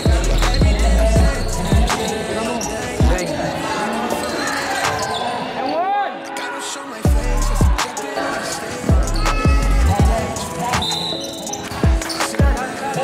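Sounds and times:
hip-hop beat with booming bass: 0.0 - 3.5, 7.0 - 13.0
rapping: 0.0 - 5.2, 6.0 - 13.0.

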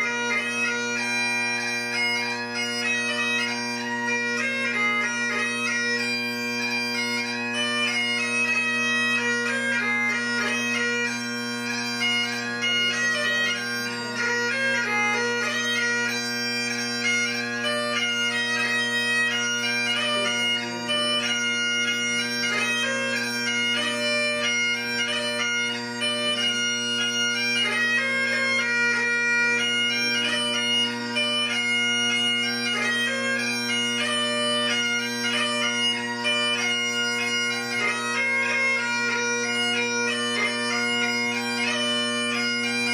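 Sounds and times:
bagpipe music: 0.0 - 42.9.

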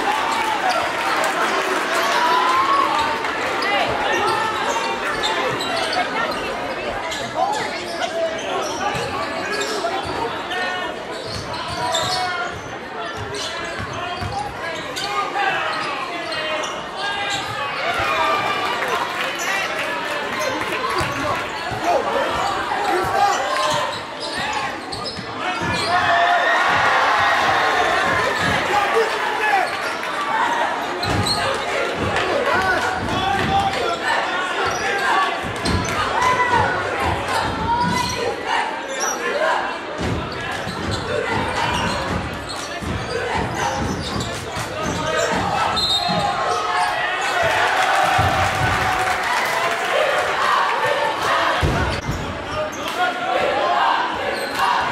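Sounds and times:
babble of voices echoing: 0.0 - 54.9.

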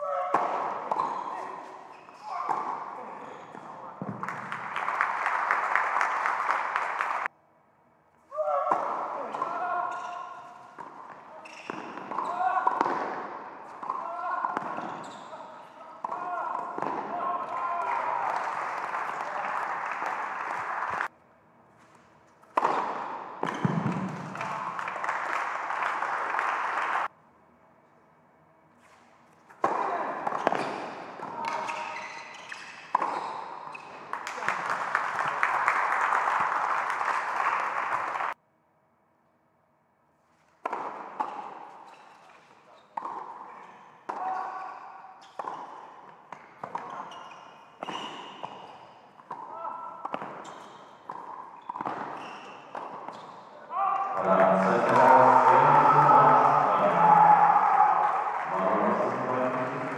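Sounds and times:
racket hitting ball: 0.3 - 1.2, 10.8 - 15.0, 16.0 - 17.2, 22.5 - 24.5, 29.6 - 32.0, 32.6 - 34.5, 40.6 - 41.8, 47.8 - 53.2
applause: 4.1 - 7.3, 17.5 - 21.1, 23.9 - 27.1, 34.0 - 38.4, 57.9 - 59.9
tennis ball bouncing: 10.8 - 15.2, 16.0 - 17.1, 22.5 - 24.3, 32.5 - 34.3, 40.6 - 41.8, 42.4 - 43.4, 45.2 - 47.2, 47.8 - 53.3.

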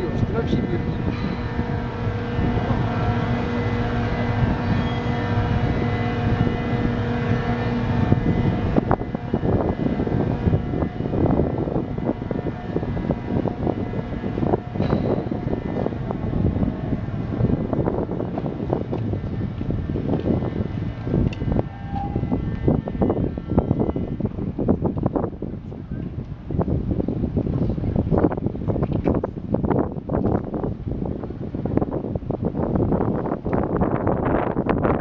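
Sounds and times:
bridge machinery humming: 0.0 - 35.0
rumbling outdoor noise: 0.0 - 35.0.

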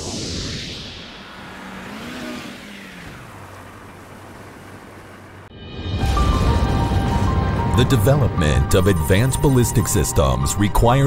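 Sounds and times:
rising and falling tone: 0.0 - 3.5.

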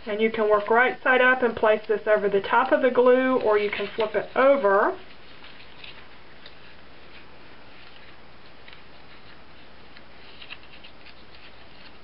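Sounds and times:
paper crinkling: 2.5 - 12.0.

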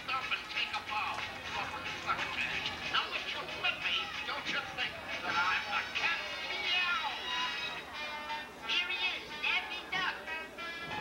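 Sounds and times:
stage music over sound system: 0.0 - 9.6.

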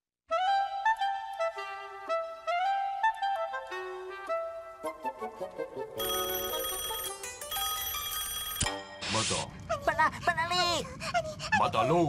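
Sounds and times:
cartoon telephone ringing: 6.0 - 8.9.

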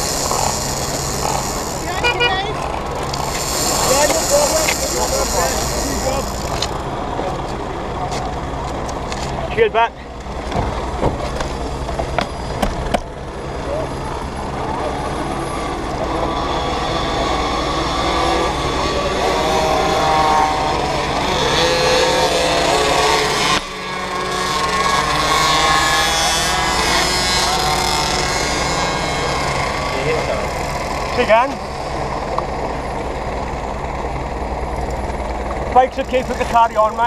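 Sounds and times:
motorcycle engine idling: 0.0 - 8.9.

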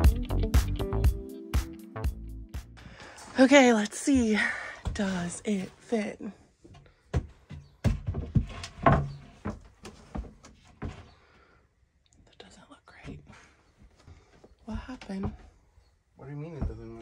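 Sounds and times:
wooden panel knocking: 7.1 - 11.0, 16.6 - 17.0.

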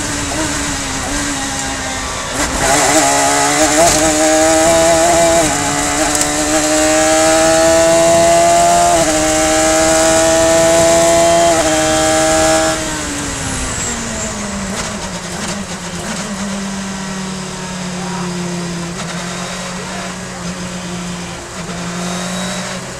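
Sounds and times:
race car engine revving: 0.0 - 22.9.

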